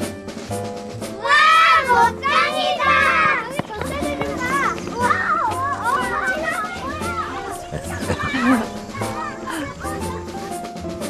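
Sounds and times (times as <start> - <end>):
background music: 0.0 - 11.0
young children chattering: 1.2 - 10.9.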